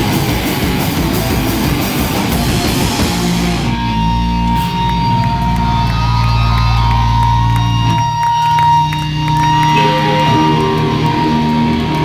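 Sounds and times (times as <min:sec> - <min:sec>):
drum and cymbal hits: 0:00.0 - 0:03.9
loud rock band playing: 0:00.0 - 0:12.0.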